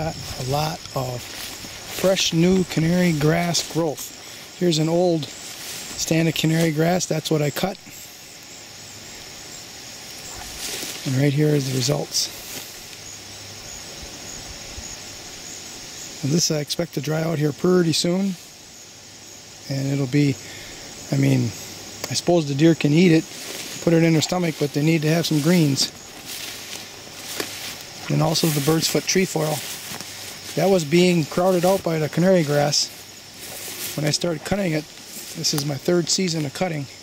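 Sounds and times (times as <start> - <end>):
footsteps through tall grass: 0.0 - 15.7, 21.0 - 37.0
even hiss: 0.0 - 37.0
high-pitched insect drone: 0.0 - 37.0.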